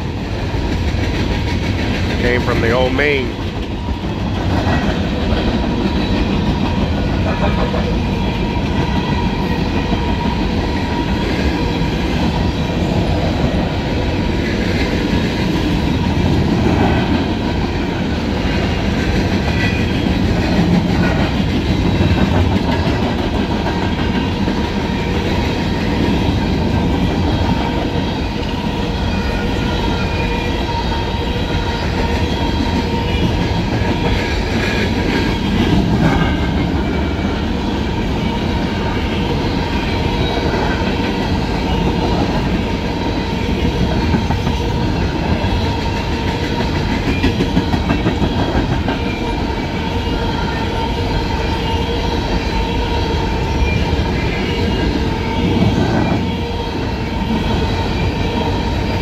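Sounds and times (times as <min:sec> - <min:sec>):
train wheels rumbling on rail: 0:00.0 - 0:59.0.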